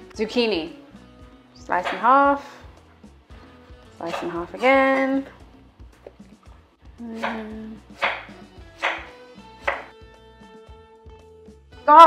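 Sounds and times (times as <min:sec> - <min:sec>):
soft background music: 0:00.0 - 0:12.0
knife chopping on wooden board: 0:01.8 - 0:02.2, 0:04.0 - 0:05.2, 0:07.2 - 0:10.0.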